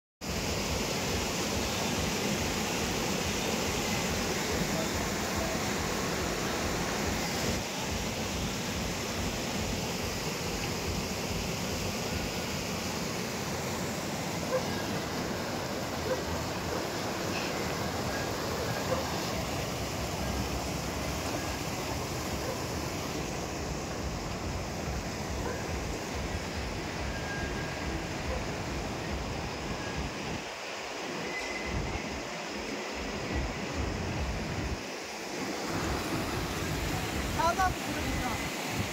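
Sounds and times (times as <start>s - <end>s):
stream rushing over boulders: 0.2s - 38.9s.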